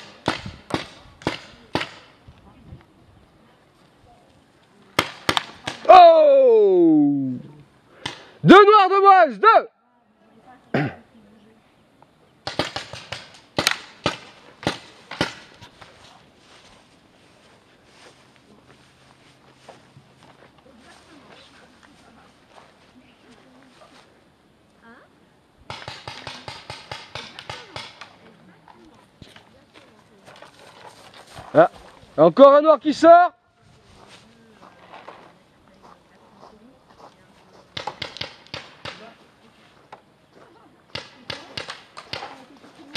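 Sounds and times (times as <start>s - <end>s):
paintball markers firing: 37.8s - 39.1s, 40.9s - 42.4s.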